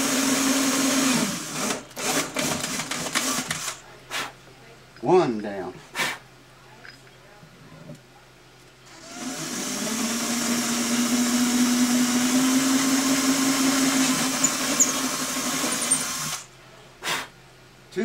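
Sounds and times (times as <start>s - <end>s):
cordless drill boring wood: 0.0s - 3.8s, 8.9s - 16.5s.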